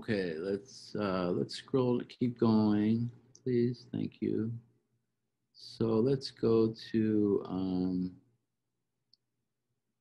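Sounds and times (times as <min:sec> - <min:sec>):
man speaking: 0:00.0 - 0:04.7, 0:05.6 - 0:08.2.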